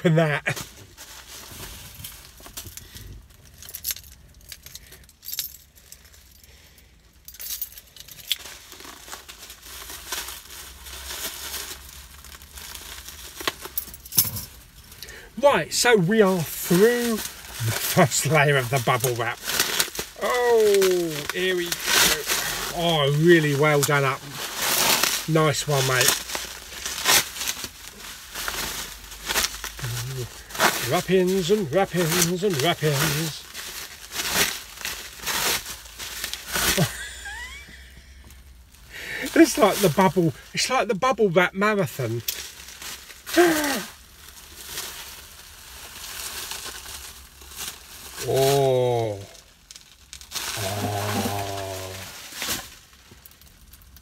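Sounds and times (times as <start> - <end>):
bubble wrap crinkling: 0.0 - 54.0
person groaning: 20.2 - 23.1, 29.8 - 30.4, 43.3 - 43.9, 48.2 - 49.4, 50.5 - 52.2.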